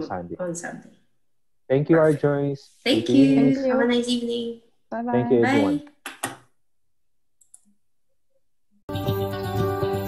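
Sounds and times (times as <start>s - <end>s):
music: 8.9s - 10.0s.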